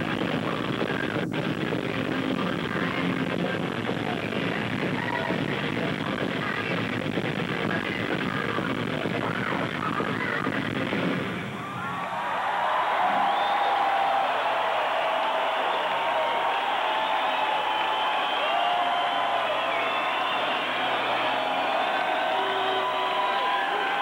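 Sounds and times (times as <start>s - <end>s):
concert crowd cheering and screaming: 11.5s - 24.0s.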